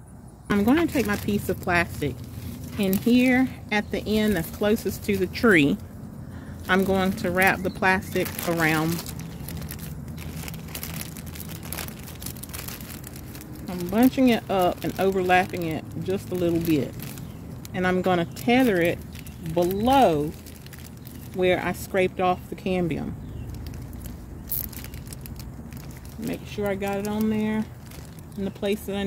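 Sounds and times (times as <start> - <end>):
low steady rumble: 0.0 - 29.0
plastic bag crinkling: 0.5 - 5.8, 6.5 - 29.0.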